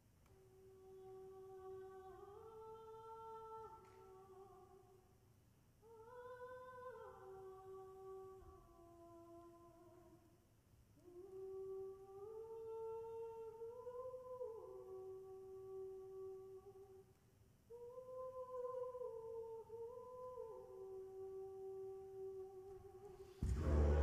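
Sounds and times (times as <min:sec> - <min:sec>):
person humming melody: 0:17.7 - 0:24.0.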